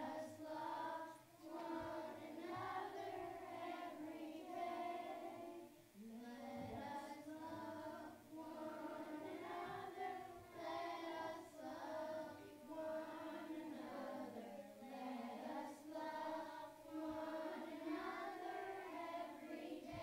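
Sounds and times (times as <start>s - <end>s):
children singing together: 0.0s - 20.0s.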